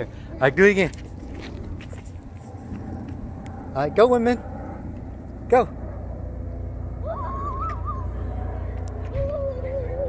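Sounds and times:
steady low rumble: 0:00.0 - 0:10.0
child's wavering vocal sounds: 0:07.0 - 0:10.0.

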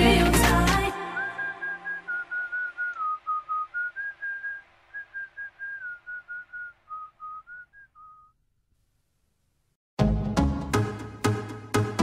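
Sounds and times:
whistled tune: 0:01.0 - 0:08.4.

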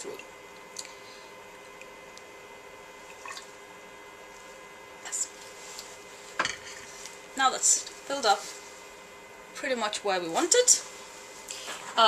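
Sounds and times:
liquid trickling into a tank: 0:03.0 - 0:03.6.

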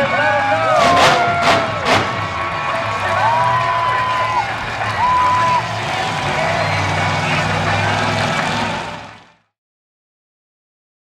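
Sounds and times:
truck engine running hard: 0:00.0 - 0:09.5.

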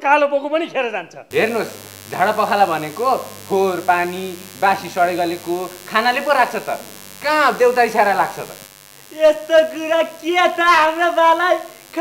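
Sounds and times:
low electrical hum: 0:01.3 - 0:12.0
person talking: 0:01.3 - 0:12.0.

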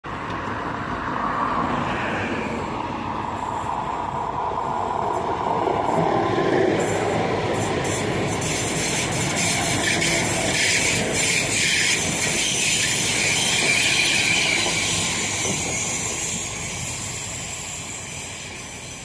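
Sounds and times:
train rolling past: 0:00.2 - 0:19.0.

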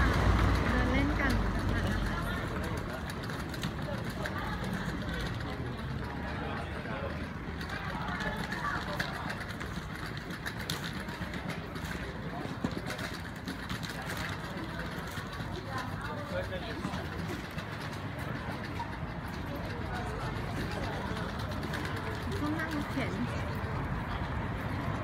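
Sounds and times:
low rumble of traffic: 0:00.0 - 0:25.0.

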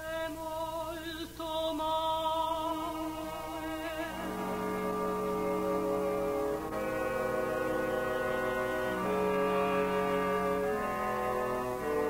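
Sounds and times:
orchestra sustained chord: 0:03.0 - 0:12.0.

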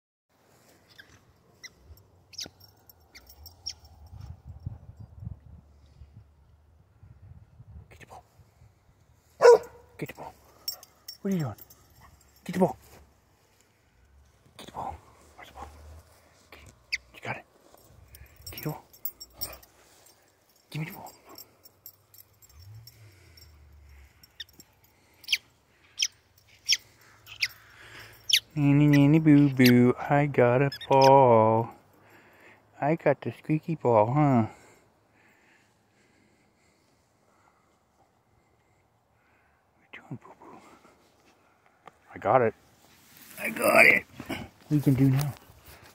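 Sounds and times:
squeaky toy squeaks: 0:26.0 - 0:27.7, 0:28.3 - 0:29.8, 0:30.7 - 0:31.2
rubber squeaky ball squeaking: 0:30.7 - 0:31.2.

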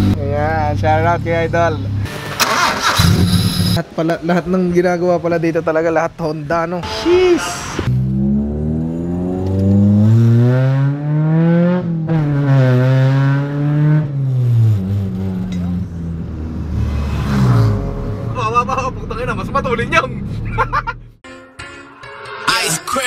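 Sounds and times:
car engine accelerating: 0:07.8 - 0:21.2.

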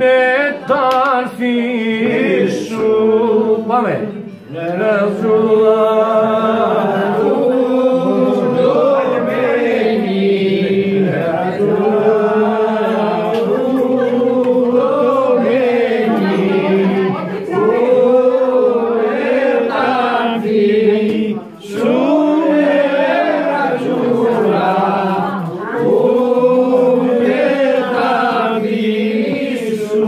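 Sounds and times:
men singing without instruments: 0:00.0 - 0:30.0.

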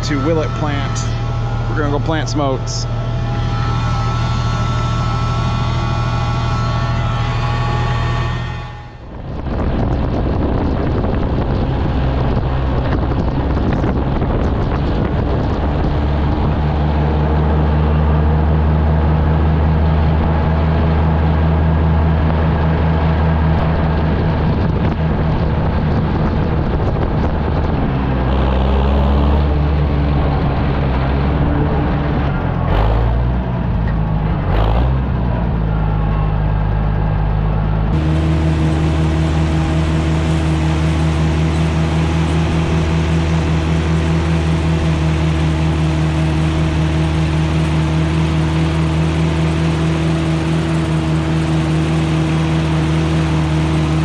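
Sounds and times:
tractor engine running: 0:00.0 - 0:54.0
engine knocks: 0:09.2 - 0:54.0.

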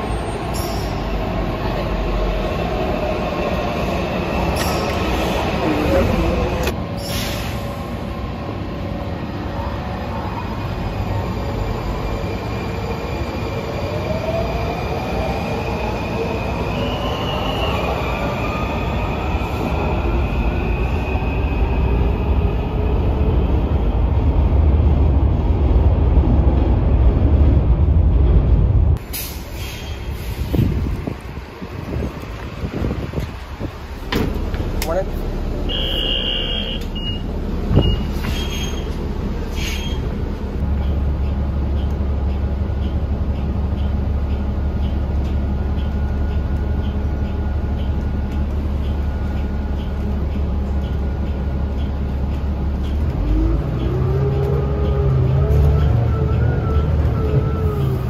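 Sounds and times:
train rumble with rising whine: 0:00.0 - 0:58.0.

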